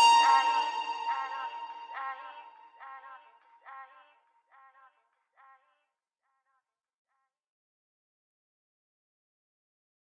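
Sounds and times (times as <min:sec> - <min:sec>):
echoing processed vocal note: 0:00.0 - 0:04.0.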